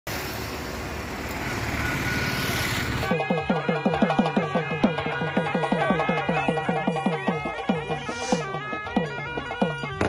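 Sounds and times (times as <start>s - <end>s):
road traffic noise: 0.0s - 10.0s
traditional music with fast drumming: 3.0s - 10.0s.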